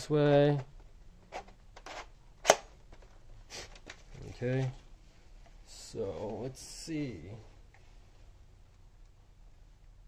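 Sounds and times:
sharp plastic click: 2.4s - 2.7s.

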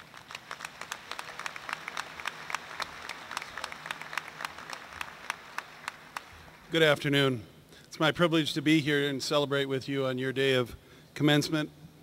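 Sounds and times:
audience applauding: 0.0s - 6.7s.

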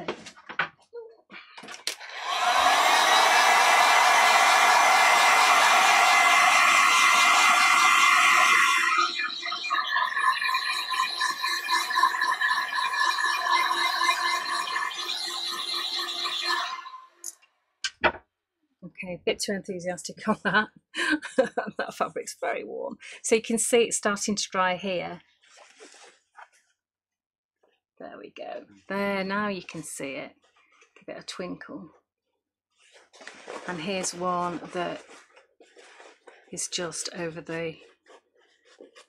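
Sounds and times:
heat gun fan motor whine: 2.0s - 9.0s.

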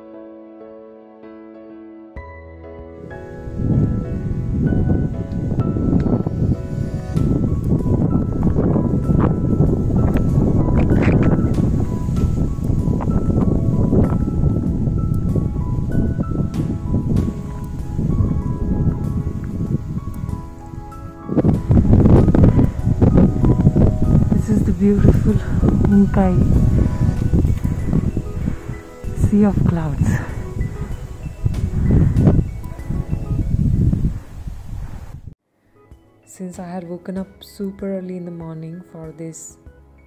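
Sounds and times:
faint background music: 2.0s - 33.9s, 35.6s - 40.0s
wind buffeting microphone: 3.0s - 35.4s.

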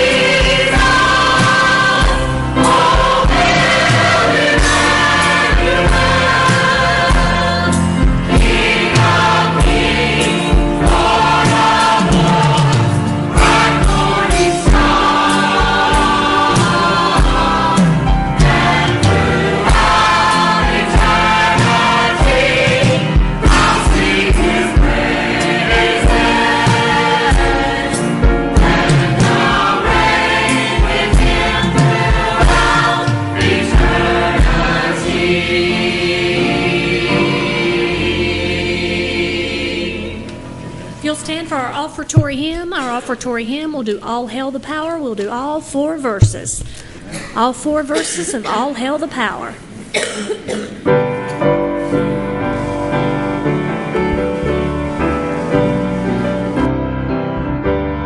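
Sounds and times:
choir singing gospel song: 0.0s - 41.0s
low instrumental accompaniment: 0.0s - 44.2s, 49.7s - 58.0s.

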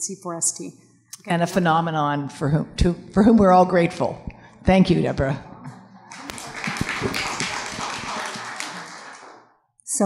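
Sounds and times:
audience applauding: 6.1s - 9.6s.

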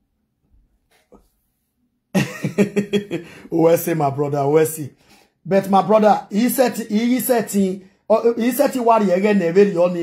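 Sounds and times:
person's voice rapid bursts: 5.5s - 10.0s.

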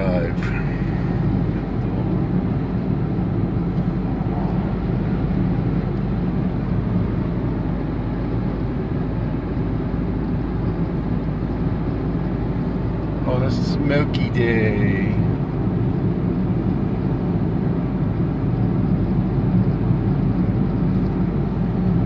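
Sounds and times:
man talking: 0.0s - 0.9s, 13.2s - 15.2s
car cabin road noise: 0.0s - 22.0s.

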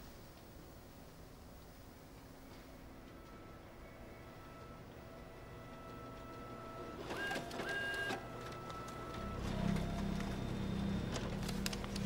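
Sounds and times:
photocopier whirring and humming: 2.2s - 12.0s.

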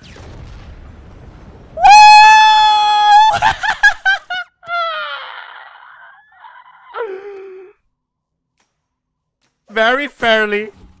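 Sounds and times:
lower cry: 1.8s - 3.5s, 4.6s - 7.8s
long falling cry: 1.8s - 7.8s.

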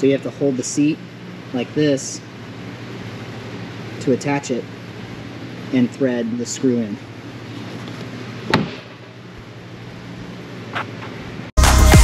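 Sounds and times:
steady low hum: 0.0s - 11.5s
sharp knock: 8.5s - 9.0s
loud electronic music: 11.6s - 12.0s.

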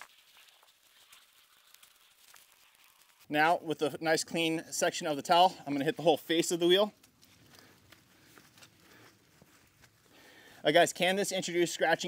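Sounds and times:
faint soft ticks and rustles: 0.1s - 3.3s, 6.3s - 10.2s.

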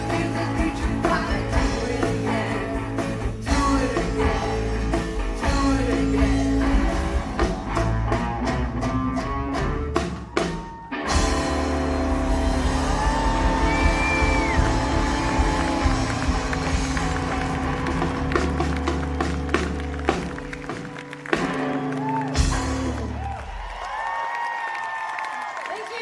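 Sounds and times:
rock band playing: 0.0s - 24.0s
audience cheering: 10.0s - 26.0s
audience applauding: 12.3s - 26.0s.

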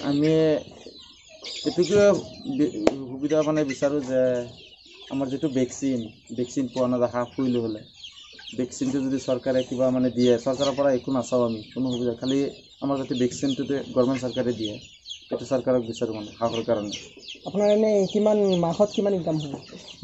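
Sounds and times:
man talking: 0.0s - 0.8s, 1.6s - 7.9s, 8.5s - 20.0s
chickens clucking and cheeping: 0.0s - 20.0s.

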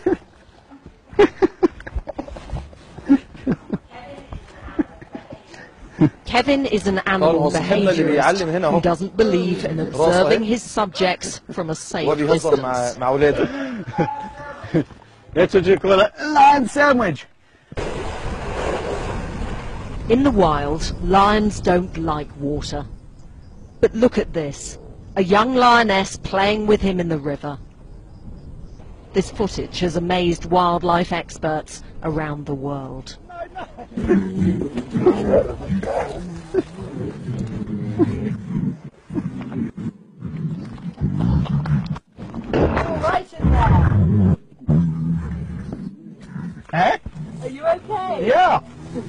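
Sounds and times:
man laughing: 1.2s - 2.0s, 13.2s - 15.0s, 33.3s - 34.4s
water splashing: 17.7s - 20.6s
lions growling: 33.9s - 47.9s, 48.6s - 49.0s.

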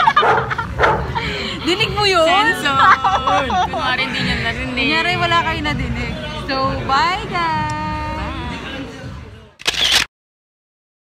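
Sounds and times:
background chatter: 0.0s - 10.1s
camera shutter click: 9.6s - 10.1s.

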